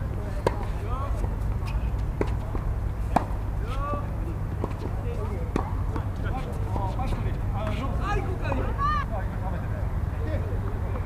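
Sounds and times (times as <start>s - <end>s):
tennis ball struck by racket: 0.4s - 3.4s.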